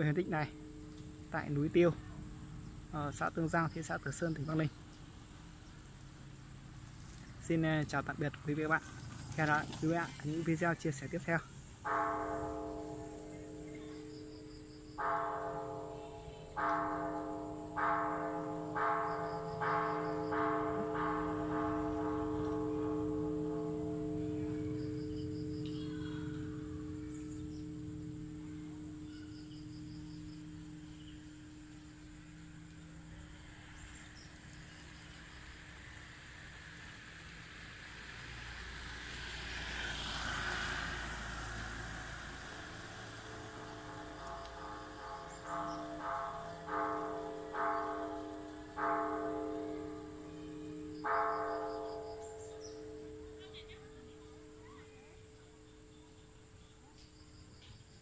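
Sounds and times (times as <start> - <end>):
bell-like ringing notes: 0.0 - 4.6, 7.6 - 34.3, 41.3 - 56.5
vehicle passing: 5.1 - 16.6, 19.6 - 30.8, 32.5 - 56.2.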